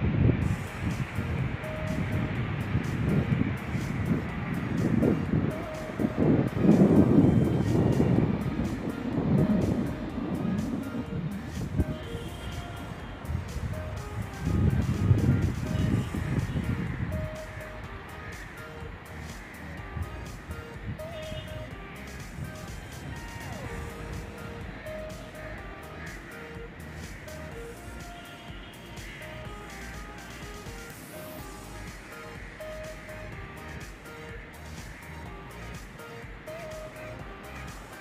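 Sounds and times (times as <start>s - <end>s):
wind buffeting microphone: 0.0s - 25.4s.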